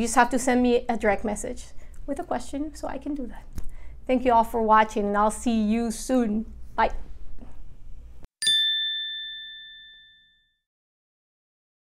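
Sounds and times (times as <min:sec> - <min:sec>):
two-tone chime ding: 0:08.4 - 0:10.6.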